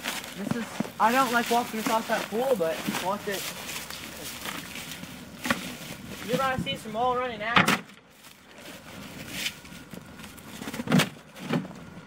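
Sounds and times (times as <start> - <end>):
footsteps in snow: 0.0 - 6.8.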